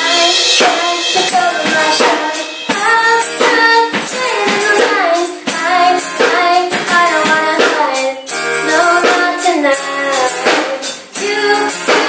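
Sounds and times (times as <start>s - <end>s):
girl singing into a microphone: 0.0s - 12.0s
live church band: 0.0s - 12.0s
steady drum beat: 0.0s - 12.0s.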